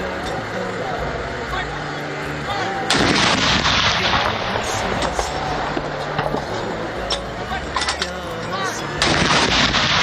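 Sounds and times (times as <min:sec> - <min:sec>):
outdoor background noise: 0:00.0 - 0:10.0
cannon boom: 0:02.9 - 0:05.0, 0:09.0 - 0:10.0.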